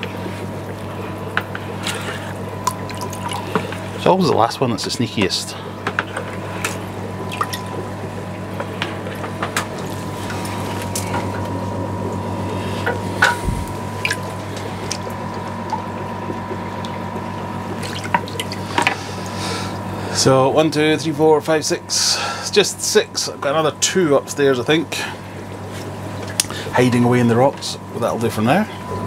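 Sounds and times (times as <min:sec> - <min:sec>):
steady low hum: 0:00.0 - 0:29.0
water dripping and trickling: 0:02.6 - 0:03.8, 0:06.3 - 0:08.8, 0:13.9 - 0:18.6.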